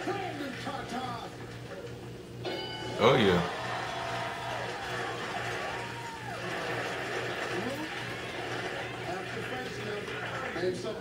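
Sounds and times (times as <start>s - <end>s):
audience applauding: 3.5s - 10.8s.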